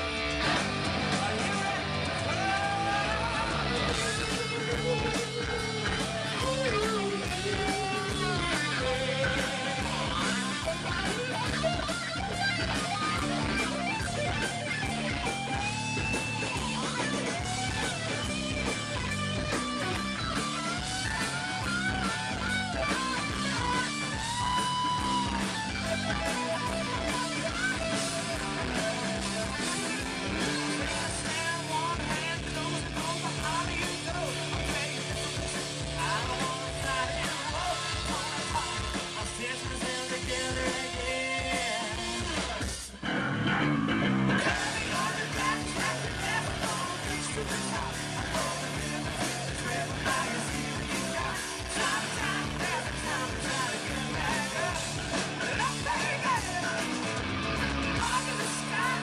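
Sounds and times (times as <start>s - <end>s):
steady drum beat: 0.0s - 43.0s, 44.4s - 59.0s
bass guitar: 0.0s - 59.0s
lead electric guitar: 0.0s - 59.0s.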